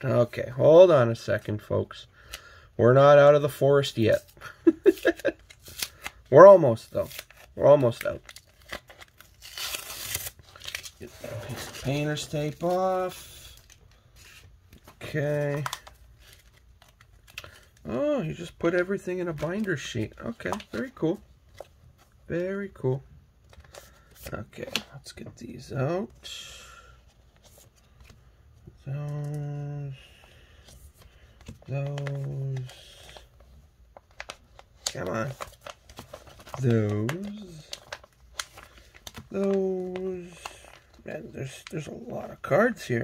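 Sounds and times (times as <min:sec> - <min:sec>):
paper and tape tearing: 0:08.4 - 0:12.8.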